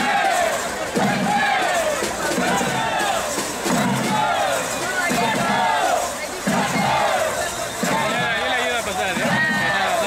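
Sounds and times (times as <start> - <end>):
crowd chanting: 0.0 - 10.0.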